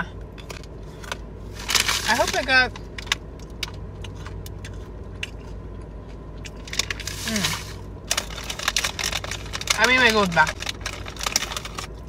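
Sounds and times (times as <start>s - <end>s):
chewing crackles: 2.8s - 9.8s.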